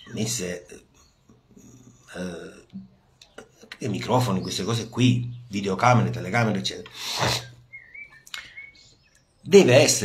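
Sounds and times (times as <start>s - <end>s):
breathy hiss: 6.9s - 7.6s.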